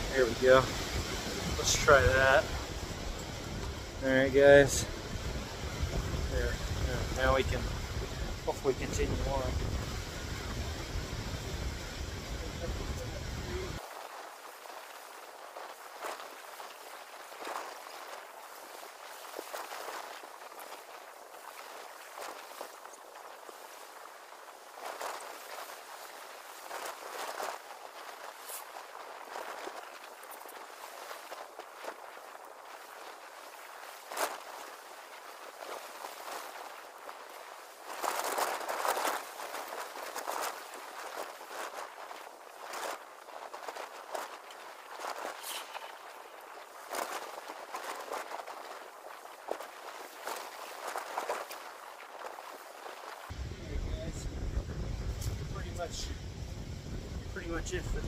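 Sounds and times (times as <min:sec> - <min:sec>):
wind buffeting microphone: 0:00.0 - 0:13.8, 0:53.3 - 0:58.0
rustling through leafy branches: 0:13.5 - 0:53.6
footsteps: 0:37.9 - 0:58.0.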